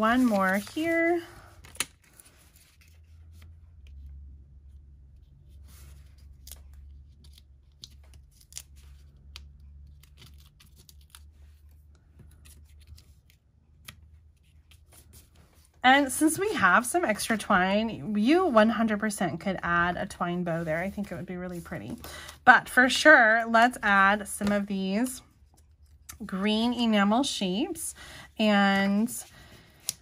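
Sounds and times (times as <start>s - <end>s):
card stock rustling: 0.0s - 16.6s
low steady hum: 0.0s - 30.0s
adhesive squares being peeled: 5.7s - 15.2s.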